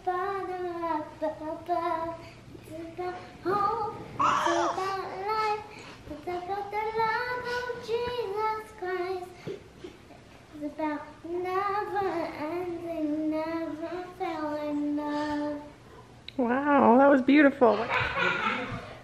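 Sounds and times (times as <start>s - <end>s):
girl singing unaccompanied: 0.0s - 9.8s, 10.4s - 15.8s.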